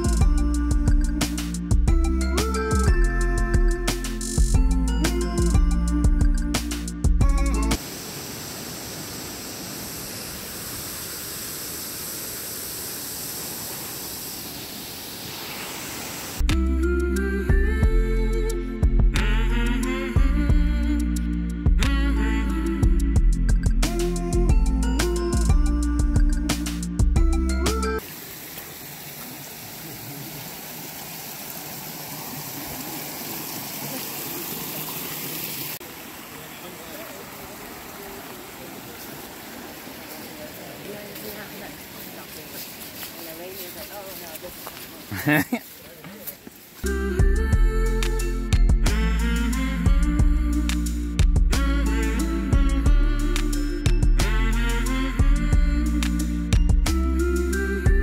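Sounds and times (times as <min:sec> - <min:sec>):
waterfall rushing: 0:07.8 - 0:16.4, 0:28.0 - 0:43.2
creek running over rocks: 0:28.0 - 0:46.9.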